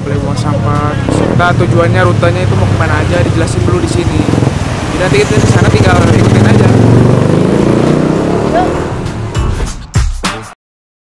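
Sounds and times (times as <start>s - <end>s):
vehicle engine running: 0.1s - 9.5s.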